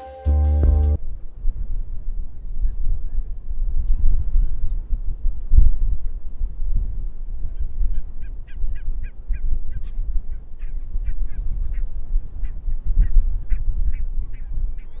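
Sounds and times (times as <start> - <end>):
steady low rumble: 0.3 - 2.4.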